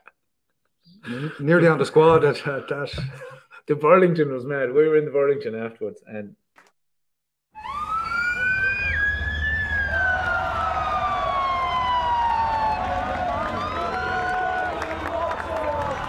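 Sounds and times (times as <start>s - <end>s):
siren wailing: 7.5s - 16.0s
street crowd noise: 8.2s - 16.0s.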